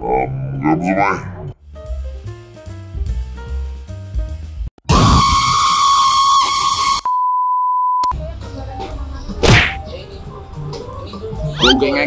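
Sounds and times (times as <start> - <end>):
loud harsh shriek: 4.9 - 7.1.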